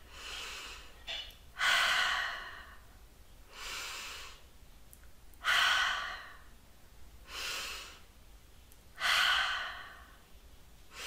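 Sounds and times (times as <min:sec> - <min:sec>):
woman breathing deeply: 0:00.0 - 0:04.5, 0:05.4 - 0:06.6, 0:07.2 - 0:08.1, 0:09.0 - 0:11.0.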